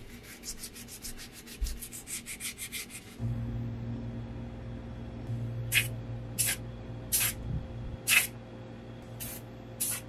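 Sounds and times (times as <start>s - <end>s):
steady low hum: 0.0s - 10.0s
spray can hissing: 5.7s - 7.4s, 8.1s - 8.3s, 9.2s - 10.0s.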